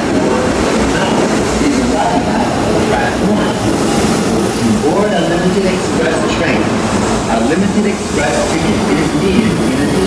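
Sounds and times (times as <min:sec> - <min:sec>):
people's voices: 0:00.0 - 0:10.0
train rumbling: 0:00.0 - 0:10.0.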